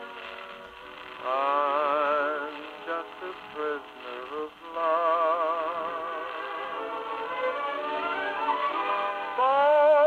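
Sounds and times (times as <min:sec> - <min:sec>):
orchestra: 0:00.0 - 0:10.0.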